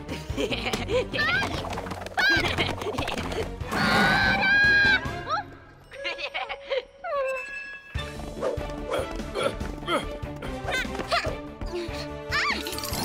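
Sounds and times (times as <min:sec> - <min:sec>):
cartoon background music: 0:00.0 - 0:13.0.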